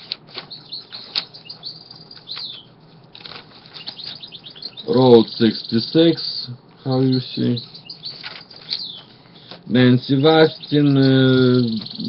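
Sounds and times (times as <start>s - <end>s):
paper pages rustling: 0.0s - 1.4s, 2.1s - 4.3s, 8.1s - 9.1s
small bird chirping: 0.4s - 12.0s.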